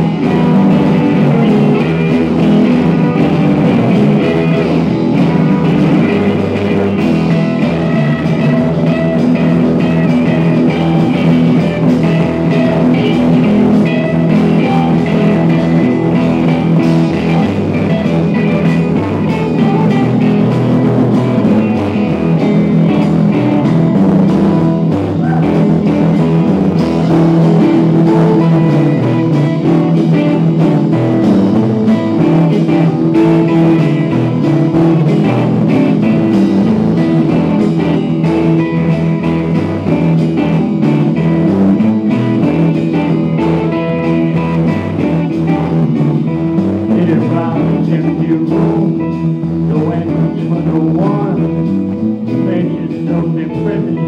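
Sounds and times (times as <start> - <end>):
drum kit: 0.0 - 54.0
electric guitars: 0.0 - 54.0.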